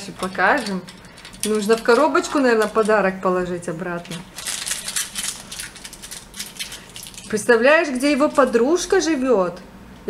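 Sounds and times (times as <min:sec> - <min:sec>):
plastic toy parts clicking: 0:00.2 - 0:03.0.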